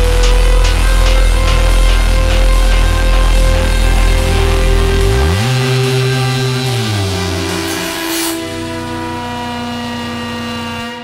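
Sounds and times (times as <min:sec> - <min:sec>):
low pulsing bass: 0:00.0 - 0:11.0
synth drone chord: 0:00.0 - 0:11.0.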